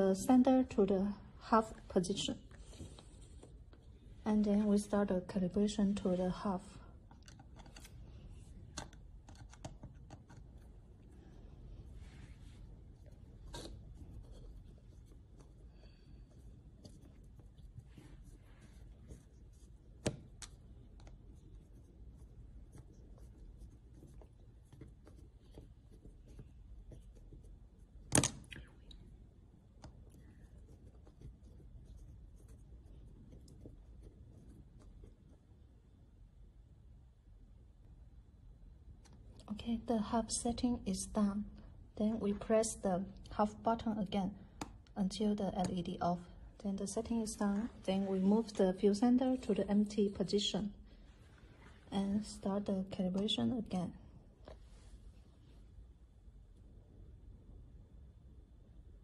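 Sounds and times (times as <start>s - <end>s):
low room rumble: 0.0s - 59.0s.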